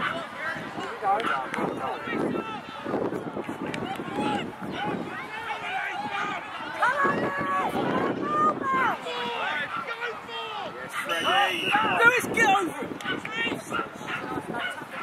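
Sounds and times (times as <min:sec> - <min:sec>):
people shouting: 0:00.0 - 0:15.0
referee whistle blast: 0:11.1 - 0:12.2.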